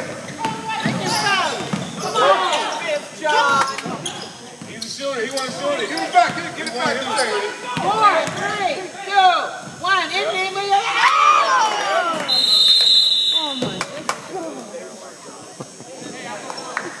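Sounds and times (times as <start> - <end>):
sneakers squeaking on hardwood floor: 0.0 - 8.7
referee's whistle: 12.2 - 13.9.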